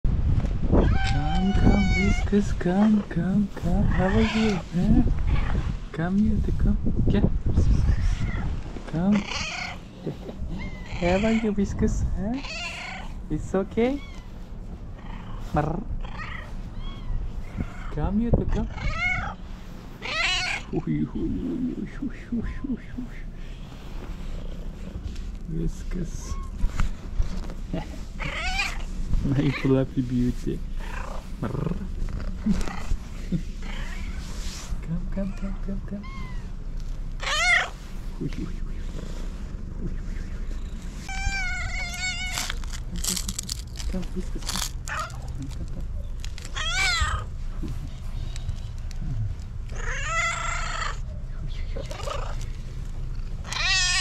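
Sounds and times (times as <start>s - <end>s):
low rumbling background: 0.0s - 54.0s
cat meowing: 0.8s - 2.3s, 7.8s - 8.5s, 9.1s - 9.8s, 12.4s - 13.2s, 13.9s - 14.4s, 16.0s - 18.0s, 18.6s - 19.4s, 20.0s - 20.8s, 28.2s - 28.9s, 35.3s - 36.6s, 37.2s - 37.8s, 41.0s - 43.6s, 44.5s - 45.4s, 46.3s - 47.3s, 49.7s - 51.1s, 53.4s - 54.0s
man laughing: 10.0s - 10.6s, 20.7s - 23.3s, 32.4s - 33.6s, 42.9s - 44.7s, 45.4s - 46.1s.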